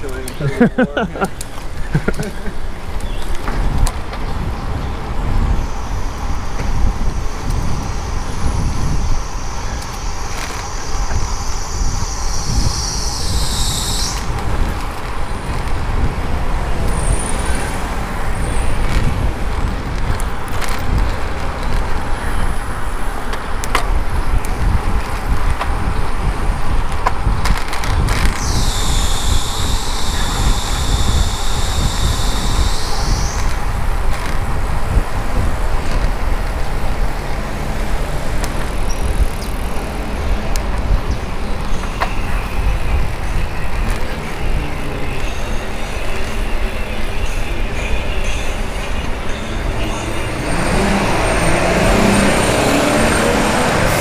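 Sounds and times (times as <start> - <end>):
street traffic: 0.0 - 54.0
wind buffeting microphone: 0.0 - 54.0
high-pitched whine: 4.5 - 19.4, 28.1 - 35.4, 37.1 - 54.0.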